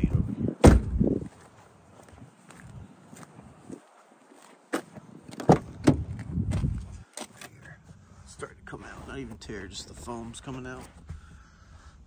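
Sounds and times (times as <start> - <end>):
footsteps on asphalt: 0.8 - 8.0.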